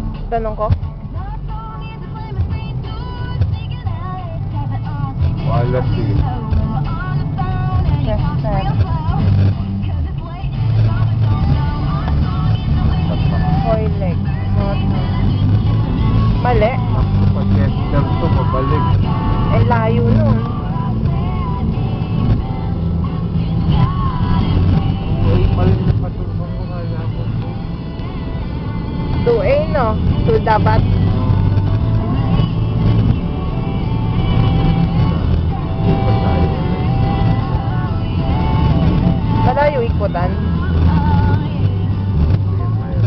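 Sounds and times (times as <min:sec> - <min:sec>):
car engine and tyres rumble: 0:00.0 - 0:43.0
voice or music: 0:00.0 - 0:43.0.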